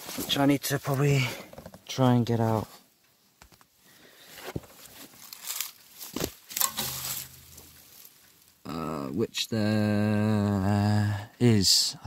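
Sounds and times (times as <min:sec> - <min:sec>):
dry grass rustling and crackling: 0:03.6 - 0:08.8.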